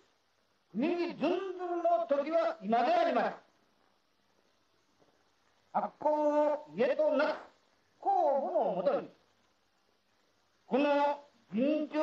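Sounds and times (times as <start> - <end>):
man speaking on old radio: 0.8 - 3.5, 5.7 - 9.2, 10.7 - 12.0.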